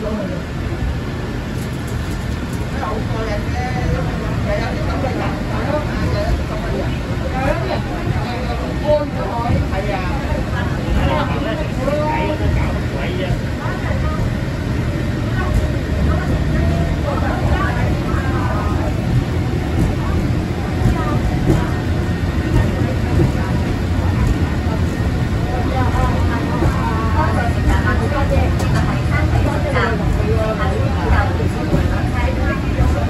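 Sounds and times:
people talking: 0.0 - 0.8, 1.6 - 33.0
tram car rumbling on track: 0.0 - 33.0.

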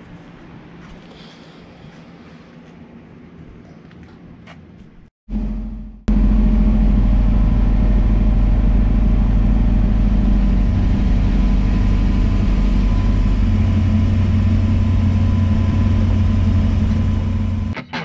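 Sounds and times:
car engine rumble from cabin: 5.3 - 17.8.

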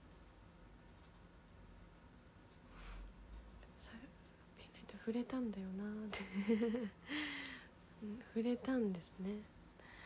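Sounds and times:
woman breathing softly: 2.7 - 3.2, 7.0 - 7.9, 9.8 - 10.0
woman's voice: 3.8 - 6.9, 8.0 - 9.6.

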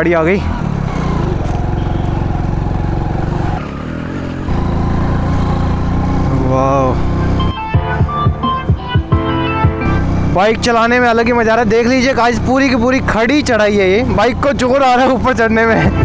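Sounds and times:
motorcycle engine straining: 0.0 - 7.5, 9.8 - 16.0
music with steady beat: 7.5 - 10.0.

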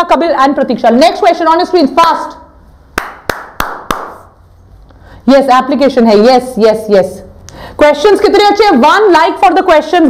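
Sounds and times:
quick hand claps: 2.9 - 4.3.

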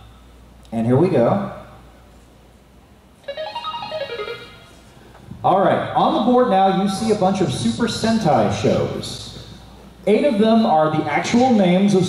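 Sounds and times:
rising electronic notes: 3.2 - 4.9.

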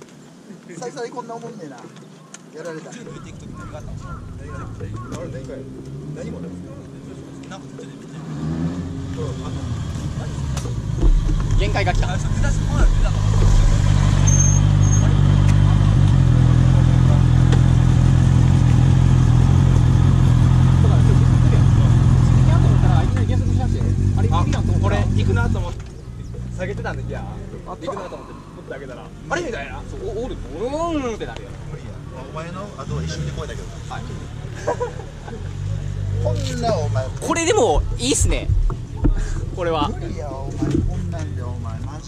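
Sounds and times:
motorcycle engine idling: 3.6 - 5.1.

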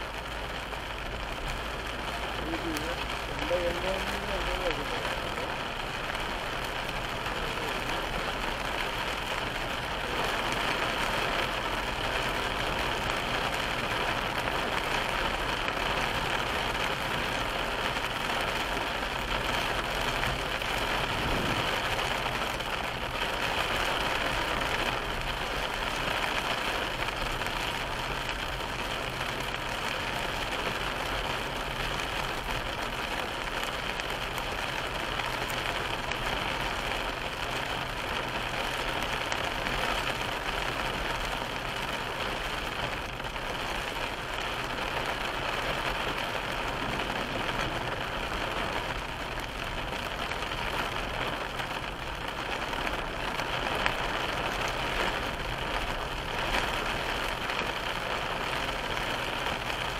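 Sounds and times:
car engine low hum: 0.0 - 59.9
tyres hissing on wet road: 0.0 - 59.9.

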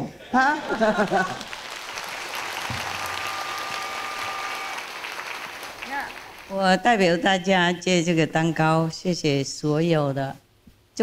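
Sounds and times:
audience applause: 0.5 - 6.6.

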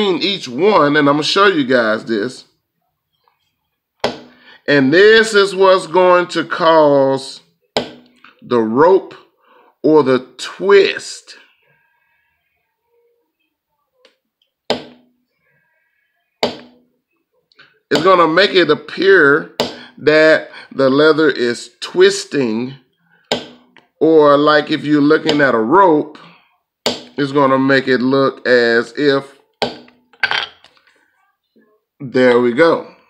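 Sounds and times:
mallet striking leather tool: 4.0 - 4.4, 7.8 - 8.2, 14.7 - 15.1, 16.4 - 16.8, 19.6 - 19.8, 23.3 - 23.8, 26.9 - 27.2, 29.6 - 30.0
metal tool clinking on stone: 30.2 - 30.7.

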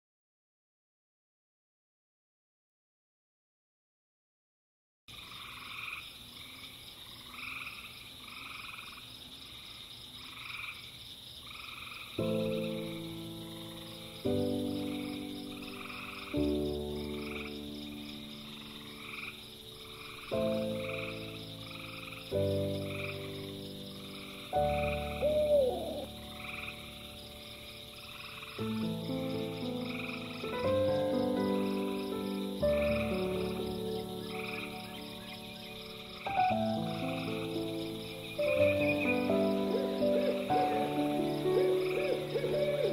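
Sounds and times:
frogs calling: 5.1 - 42.9
high insect drone: 5.1 - 42.9
slow music chords: 12.2 - 42.9.

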